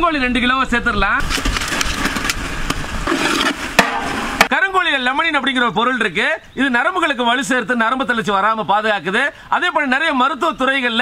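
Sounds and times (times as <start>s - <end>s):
man talking: 0.0s - 1.2s, 4.5s - 11.0s.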